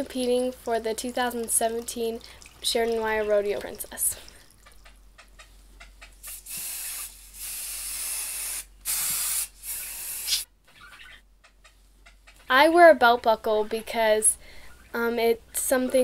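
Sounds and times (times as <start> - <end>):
hairspray hissing bursts: 6.2 - 10.5.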